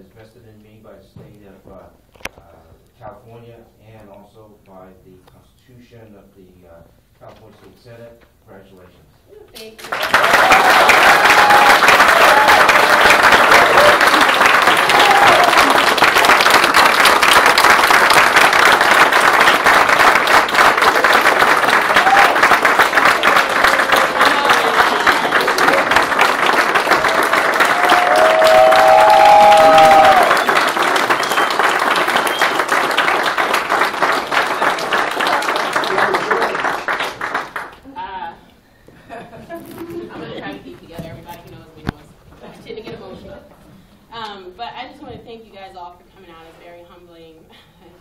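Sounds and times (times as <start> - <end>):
crowd applauding: 9.8 - 37.9
voices cheering: 9.9 - 16.0, 21.6 - 32.7.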